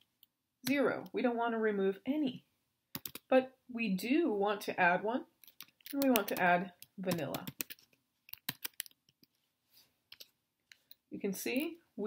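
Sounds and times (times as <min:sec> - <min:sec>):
computer keyboard key clicks: 0:03.0 - 0:03.2, 0:07.1 - 0:09.0.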